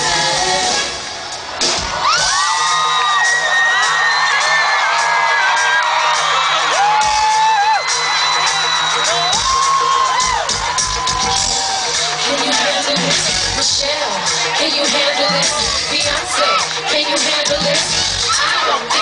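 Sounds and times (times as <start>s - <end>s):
crowd screaming and whooping: 0.6s - 19.0s.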